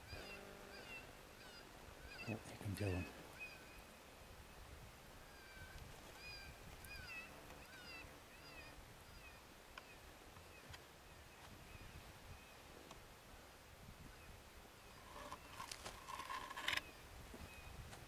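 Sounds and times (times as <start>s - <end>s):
rough rustling noise: 14.9s - 18.0s.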